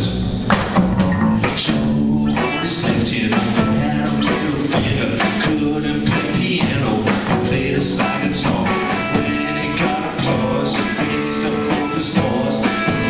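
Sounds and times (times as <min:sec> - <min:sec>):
bass guitar: 0:00.0 - 0:13.0
electric guitar chords: 0:00.0 - 0:13.0.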